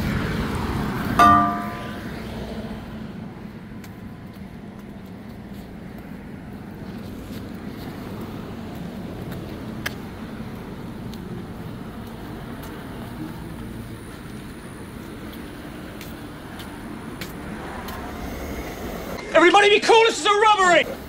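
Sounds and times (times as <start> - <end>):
road traffic rumble: 0.0 - 21.0.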